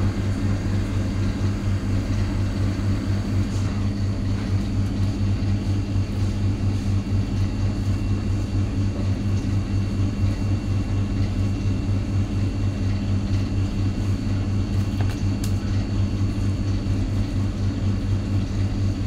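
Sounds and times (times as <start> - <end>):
machine humming loudly: 0.0 - 19.0.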